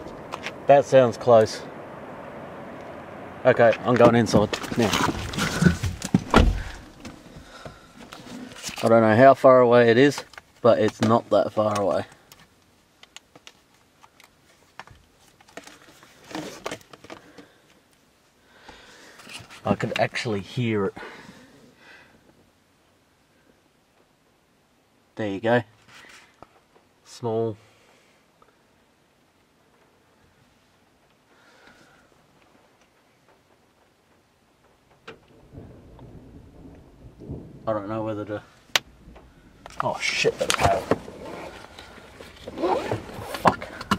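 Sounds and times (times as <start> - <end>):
car door shutting: 4.0 - 7.5
thunder rumbling: 35.2 - 42.4.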